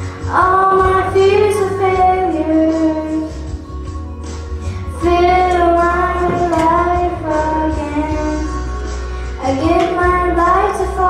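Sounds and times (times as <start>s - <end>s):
instrumental accompaniment: 0.0s - 11.0s
girl singing into a microphone: 0.1s - 3.6s, 4.9s - 11.0s.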